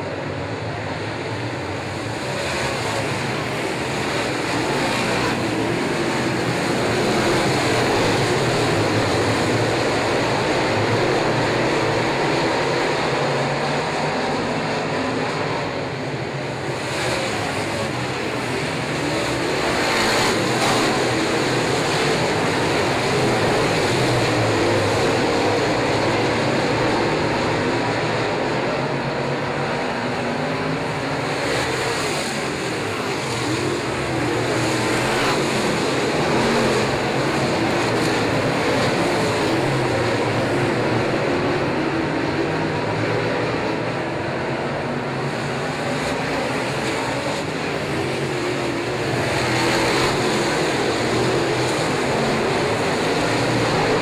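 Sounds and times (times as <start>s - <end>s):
race car engines howling: 0.0s - 54.0s.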